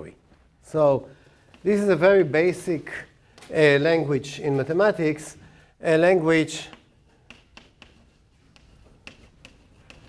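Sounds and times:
chalk clicking on blackboard: 0:06.4 - 0:10.0.

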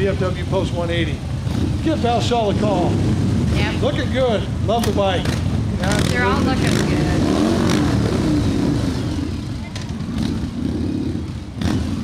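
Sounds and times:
motorcycles riding past: 0:00.0 - 0:12.0.

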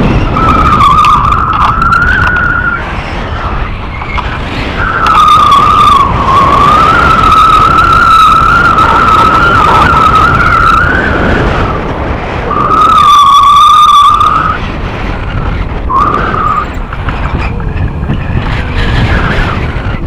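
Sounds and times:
wind buffeting microphone: 0:00.0 - 0:20.0
high wavering whistle: 0:00.2 - 0:02.8, 0:04.8 - 0:11.8, 0:12.5 - 0:14.6, 0:15.9 - 0:16.7.

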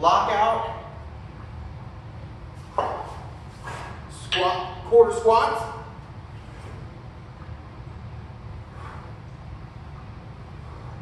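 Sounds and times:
man breathing sharply: 0:08.6 - 0:09.4.

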